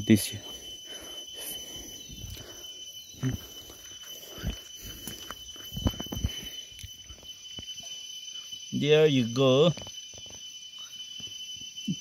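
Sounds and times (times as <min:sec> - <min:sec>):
high-pitched insect drone: 0:00.0 - 0:12.0.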